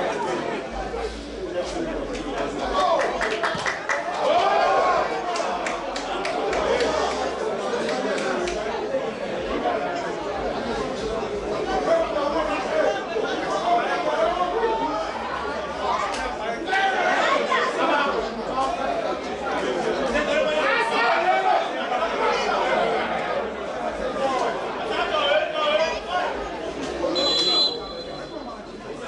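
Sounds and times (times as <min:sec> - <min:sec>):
overlapping chatter: 0:00.0 - 0:29.0.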